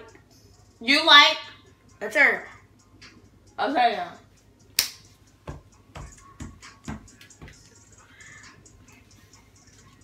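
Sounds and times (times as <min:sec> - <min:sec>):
music leaking from headphones: 0:04.5 - 0:10.0.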